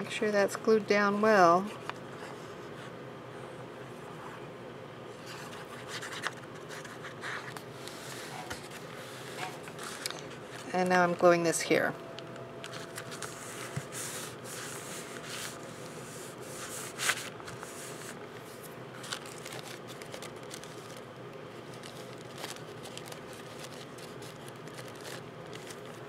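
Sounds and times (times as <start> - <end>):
faint steady hum: 0.0 - 26.0
paper rustling: 5.2 - 11.1, 12.6 - 26.0.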